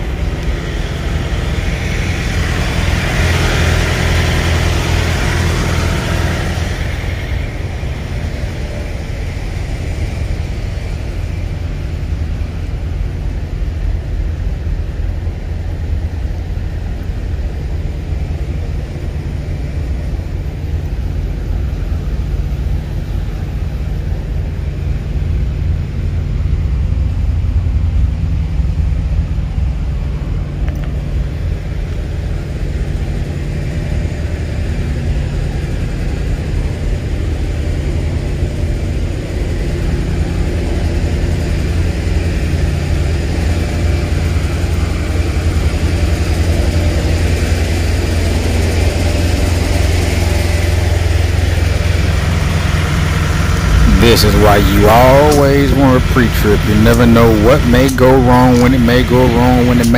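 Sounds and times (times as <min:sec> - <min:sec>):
truck diesel engine idling: 0:00.0 - 0:59.9.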